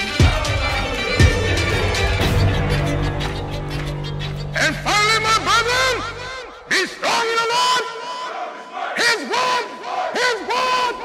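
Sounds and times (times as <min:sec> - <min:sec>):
steady held tone: 0:00.4 - 0:06.7
voices shouting a rhythmic chant: 0:06.2 - 0:11.0.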